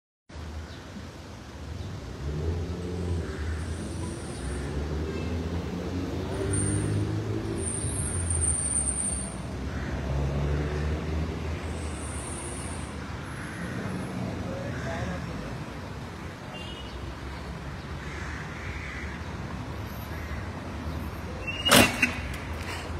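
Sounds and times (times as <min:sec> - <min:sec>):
tyres on asphalt: 0:00.3 - 0:22.9.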